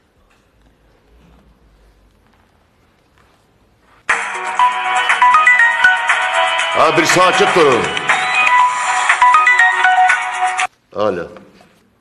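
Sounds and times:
phone ringtone melody: 0:04.1 - 0:10.7.

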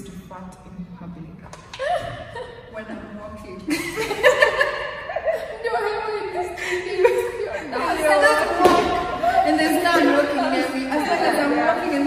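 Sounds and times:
women talking over each other: 0:05.6 - 0:12.0.

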